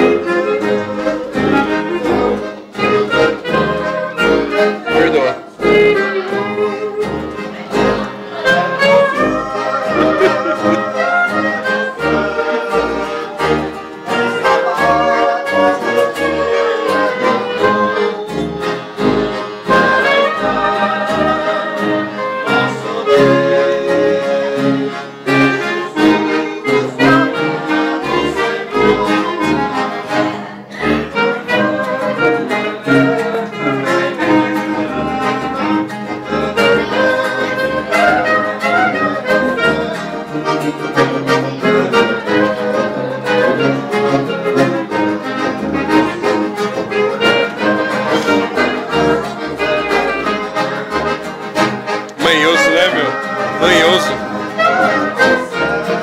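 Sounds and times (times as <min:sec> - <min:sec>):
acoustic ensemble playing hymn tune: 0:00.0 - 0:56.0.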